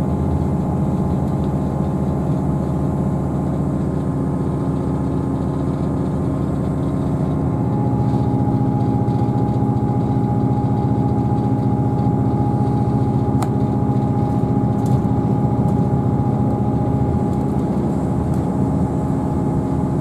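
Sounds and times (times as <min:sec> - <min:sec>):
train diesel engine hum: 0:00.0 - 0:20.0.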